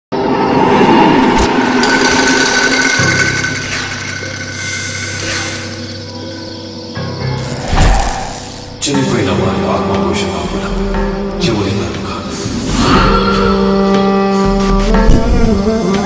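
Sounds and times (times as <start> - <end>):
dramatic music: 0.2 - 16.0.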